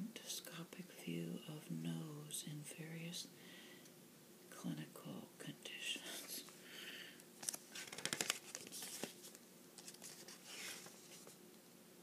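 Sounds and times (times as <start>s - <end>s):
woman whispering softly: 0.0s - 3.3s, 4.6s - 6.5s
booklet pages rustling: 7.4s - 11.4s.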